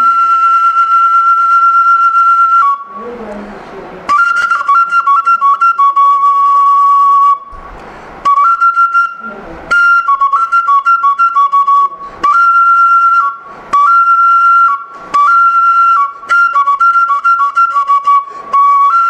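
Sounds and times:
wooden flute playing two notes: 0.0 - 3.4, 4.1 - 19.0.

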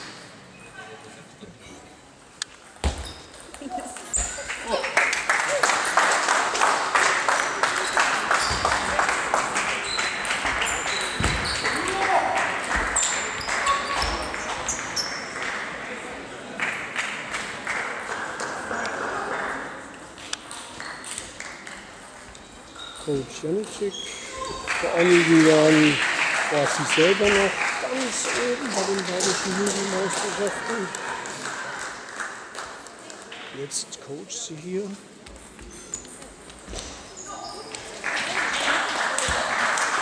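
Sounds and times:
crowd chatter: 0.0 - 2.8, 3.4 - 40.0
shoes squeaking on floor: 2.8 - 4.4, 7.8 - 9.0, 9.8 - 12.0, 12.8 - 15.4, 22.3 - 24.7, 35.2 - 37.9.

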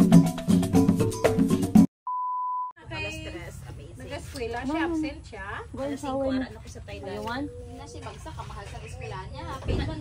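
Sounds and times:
electronic test-tone beep: 2.1 - 2.8.

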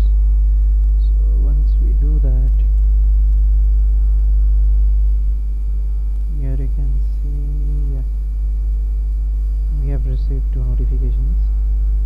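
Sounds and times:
faint steady higher tones: 0.0 - 12.0
loud mains hum: 0.0 - 12.0
person speaking indistinctly: 0.9 - 2.8, 6.2 - 8.2, 9.7 - 11.6.

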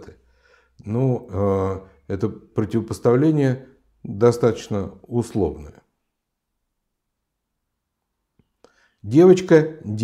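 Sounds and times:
person speaking: 0.0 - 5.9, 9.0 - 10.0.

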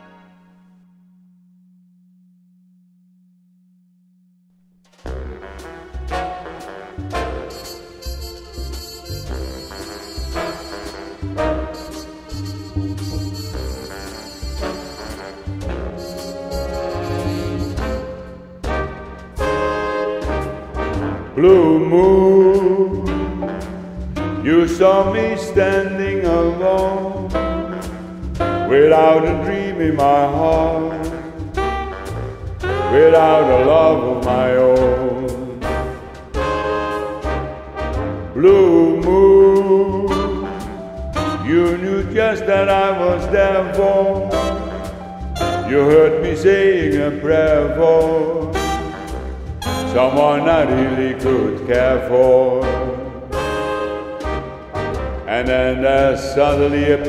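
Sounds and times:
band playing: 4.9 - 57.0
big band holding low note: 5.1 - 57.0.

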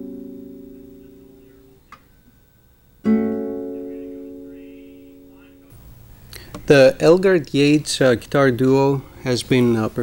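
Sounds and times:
lute chord ringing: 0.0 - 5.8.

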